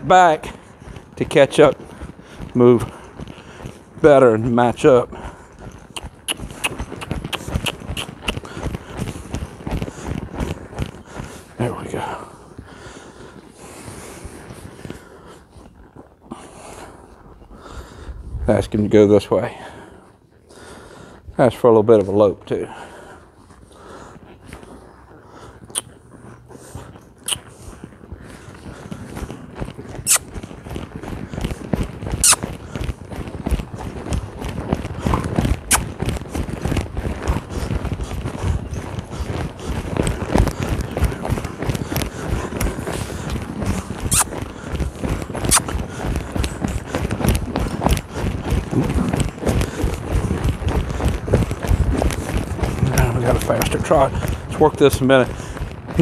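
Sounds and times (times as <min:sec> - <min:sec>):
horse hoofbeats on sand: 0:00.0 - 0:56.0.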